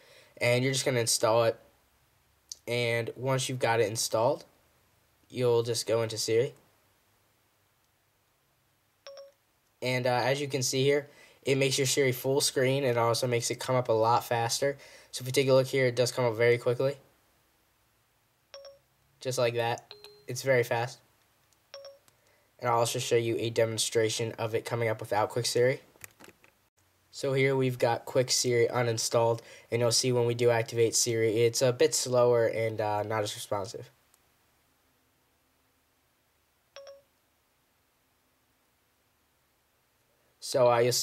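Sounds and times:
phone activation chime: 9.1 - 9.4, 18.5 - 18.9, 19.9 - 20.4, 21.7 - 22.1, 36.8 - 37.1.

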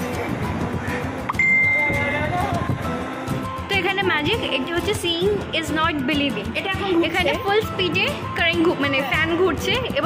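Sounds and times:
background music: 0.0 - 10.0
high-pitched electronic beep: 1.3 - 2.1.

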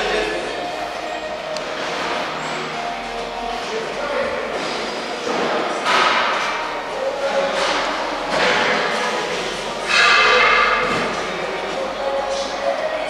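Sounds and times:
construction clatter in hall: 0.0 - 13.0.

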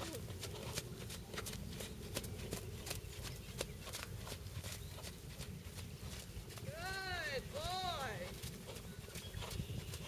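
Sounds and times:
horse hooves trotting on sand: 0.0 - 10.0.

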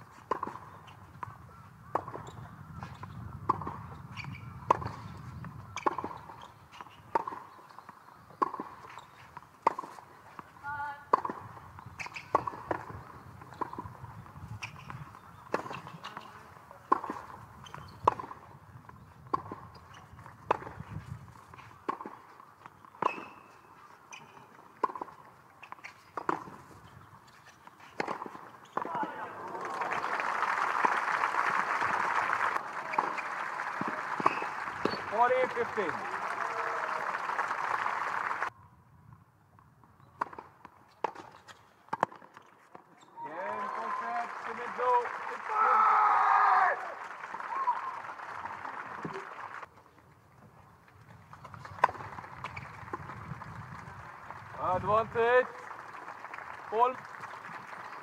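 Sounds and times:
tennis ball bouncing: 0.2 - 1.3, 1.9 - 14.0, 14.6 - 29.2, 32.9 - 36.0, 40.2 - 42.8, 51.4 - 54.0
racket striking tennis ball: 2.9 - 5.1, 5.8 - 7.4, 8.4 - 9.0, 9.6 - 10.0, 11.1 - 13.9, 14.6 - 16.3, 16.9 - 18.5, 19.3 - 22.3, 22.9 - 23.5, 24.1 - 26.7, 27.7 - 29.2, 32.9 - 35.6, 40.2 - 42.5.

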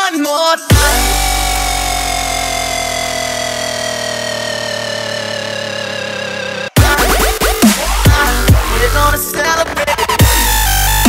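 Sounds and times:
long held synth note: 0.7 - 6.8
deep bass hit: 0.7 - 9.0.

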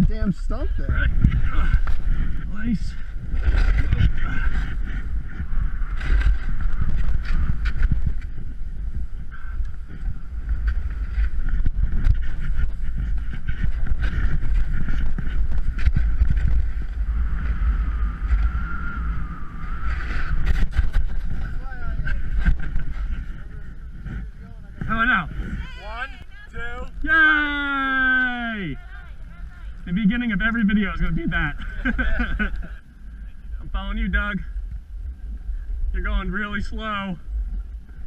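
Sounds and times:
wind noise on microphone: 0.0 - 38.0
snowboard scraping over snow: 0.3 - 9.2, 9.8 - 32.7.

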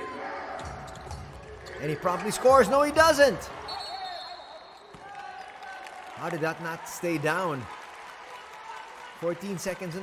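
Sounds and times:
arena court noise: 0.0 - 10.0.

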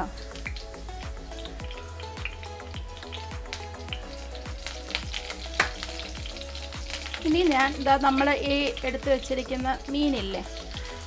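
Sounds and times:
leaves sizzling in hot oil: 0.0 - 11.0
quiet background music: 0.0 - 11.0.

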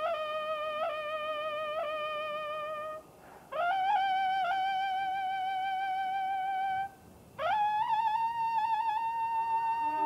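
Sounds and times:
solo trumpet: 6.3 - 10.0.

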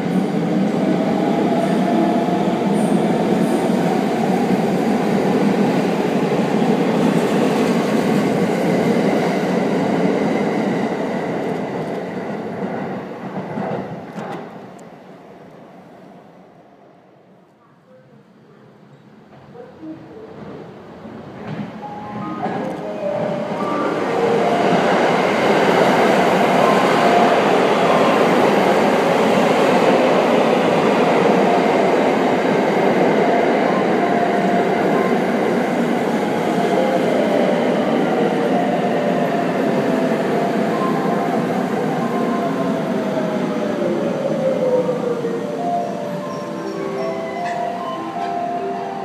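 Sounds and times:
train rumble and wheel noise: 0.0 - 49.0.

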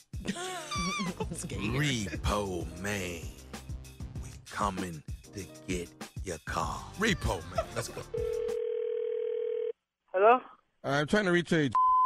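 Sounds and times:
telephone ringing tone: 8.2 - 9.8.

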